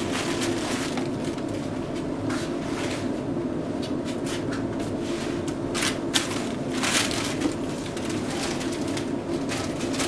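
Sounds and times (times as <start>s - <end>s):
paper towel crumpling: 0.0s - 1.6s, 5.7s - 10.0s
steady low hum: 0.0s - 10.0s.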